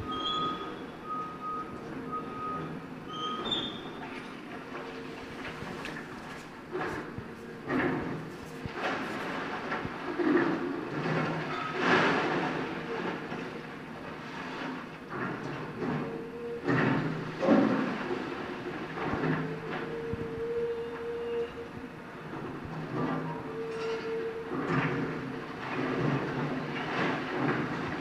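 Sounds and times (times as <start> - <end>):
excavator engine running: 0.0 - 11.5.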